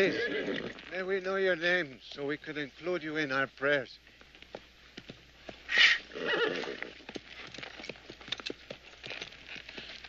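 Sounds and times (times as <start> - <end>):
horse whinnying: 0.0 - 0.9, 5.7 - 7.1
hooves clip-clopping: 0.0 - 10.0.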